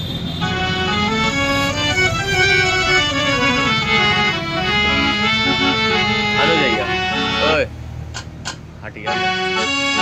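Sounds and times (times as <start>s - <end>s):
electronic harmonium chords: 0.0s - 10.0s.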